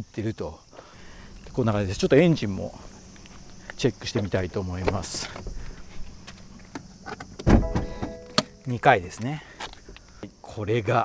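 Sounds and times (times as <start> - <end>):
light handling noise: 2.9 - 10.2
car door opening click: 7.4 - 8.6
thump: 7.4 - 8.6
electronic chime from car: 7.6 - 8.7.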